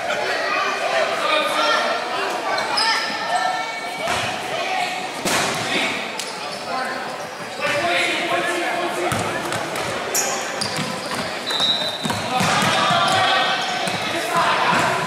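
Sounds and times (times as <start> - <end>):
chatter of spectators and players: 0.0 - 15.0.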